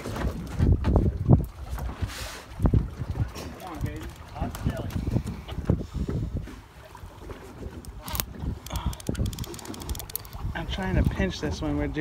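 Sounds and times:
water: 0.0s - 12.0s
wind buffeting microphone: 0.0s - 12.0s
fine clicks: 8.1s - 10.4s.

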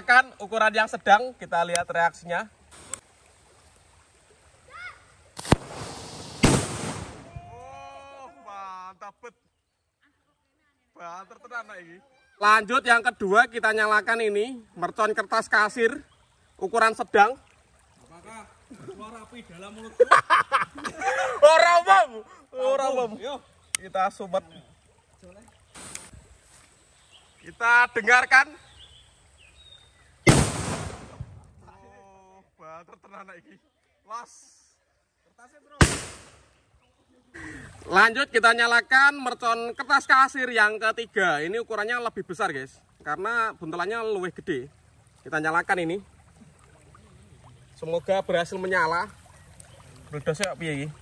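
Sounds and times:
rushing hiss: 5.4s - 7.2s
firecracker bangs: 5.4s - 7.4s, 30.2s - 31.4s, 35.8s - 36.5s.

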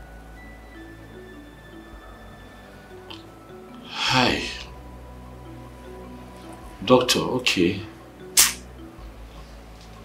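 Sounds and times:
soft film score: 0.0s - 10.0s
short sharp click: 8.4s - 8.6s.

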